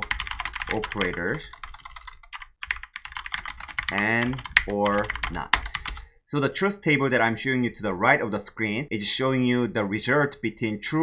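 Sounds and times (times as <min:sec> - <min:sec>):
computer keyboard typing: 0:00.0 - 0:06.1.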